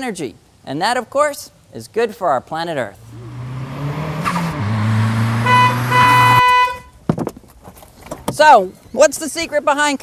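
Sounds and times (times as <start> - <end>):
car engine humming: 2.9 - 6.9
car horn honking: 4.2 - 6.9.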